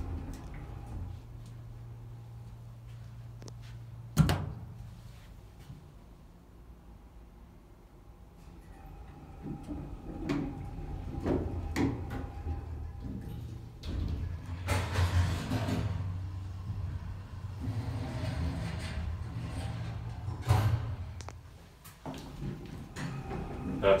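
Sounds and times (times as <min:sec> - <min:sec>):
elevator doors sliding: 0:00.0 - 0:02.9, 0:08.3 - 0:21.5, 0:22.2 - 0:24.0
elevator low hum: 0:00.0 - 0:24.0.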